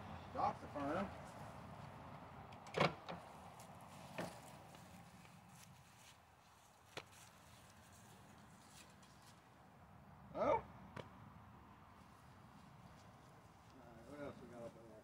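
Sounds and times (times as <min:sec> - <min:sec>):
faint outdoor background: 0:00.0 - 0:15.0.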